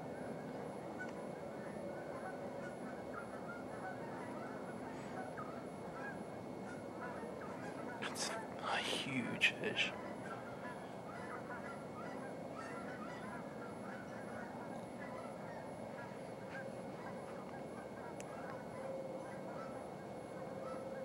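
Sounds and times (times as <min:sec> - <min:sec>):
distant flock bird calls: 0:00.0 - 0:21.0
steady background hum: 0:00.0 - 0:21.0.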